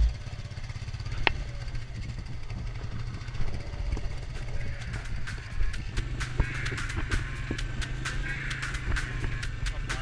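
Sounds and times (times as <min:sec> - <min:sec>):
quad bike engine rumbling: 0:00.0 - 0:10.0.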